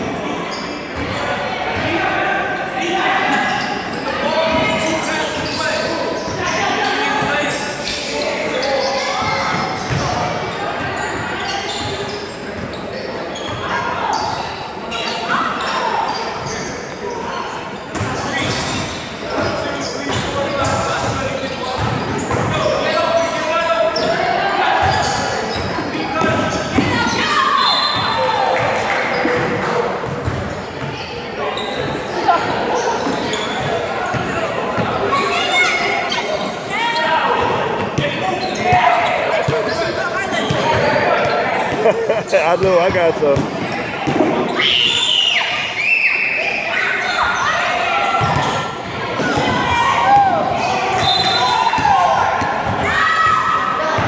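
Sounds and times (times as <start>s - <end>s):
chatter and shouts: 0.0s - 54.0s.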